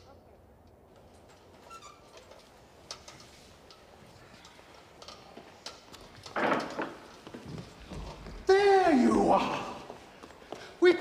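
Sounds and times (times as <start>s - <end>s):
small clicks and ticks: 2.1s - 6.4s.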